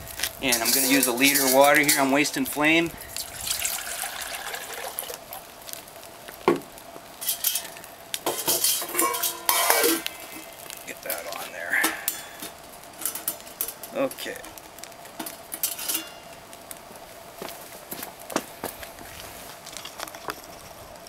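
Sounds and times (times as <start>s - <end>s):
wood fire sizzling: 0.0s - 21.0s
water poured into metal pot: 3.1s - 5.4s
metal pot clinking and knocking: 7.2s - 10.0s.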